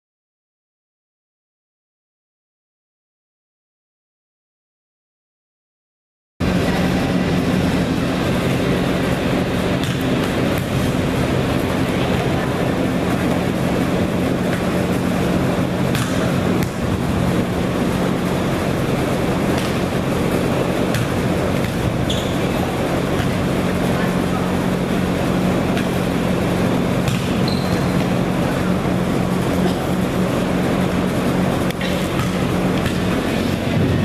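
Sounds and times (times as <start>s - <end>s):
machine hum and rumble: 6.4s - 34.0s
volleyball being struck: 9.8s - 10.9s, 15.8s - 17.0s, 20.9s - 22.3s, 27.0s - 28.1s, 31.7s - 33.1s.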